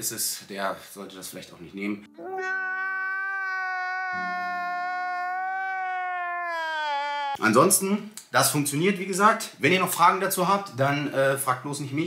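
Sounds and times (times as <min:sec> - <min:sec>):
man wailing: 0:02.2 - 0:07.4.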